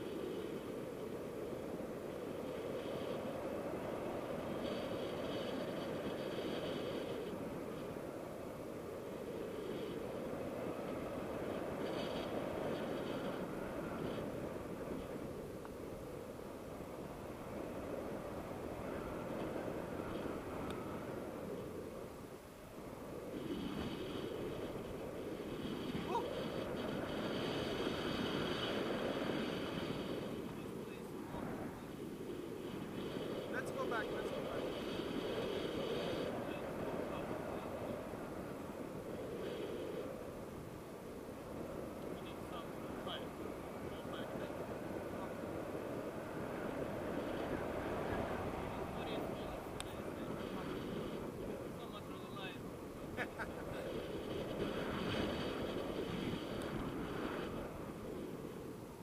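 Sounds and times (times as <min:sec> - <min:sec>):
wind rushing over microphone: 0:00.0 - 0:59.0.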